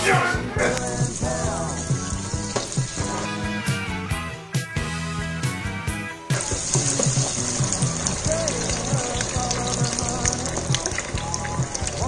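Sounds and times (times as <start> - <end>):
background music with bass line: 0.0 - 12.0
deep-fryer sizzling: 0.6 - 4.0, 6.3 - 12.0.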